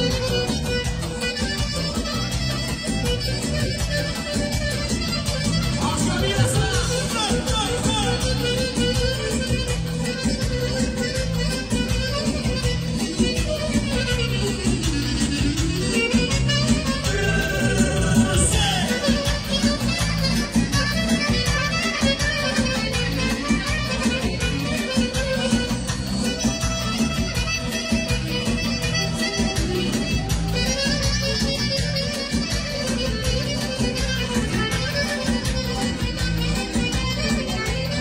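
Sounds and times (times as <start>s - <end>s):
live party band playing: 0.0s - 38.0s
strong bass line: 0.0s - 38.0s.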